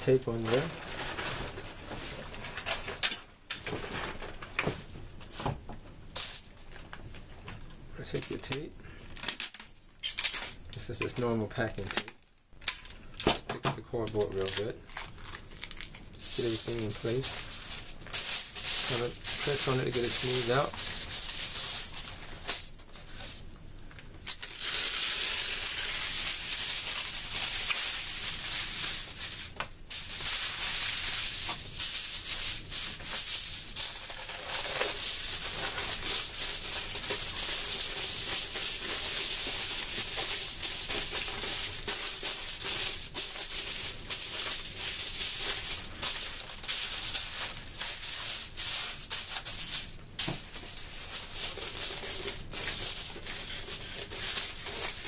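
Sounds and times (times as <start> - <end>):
aluminum foil crinkling: 8.0 - 55.0.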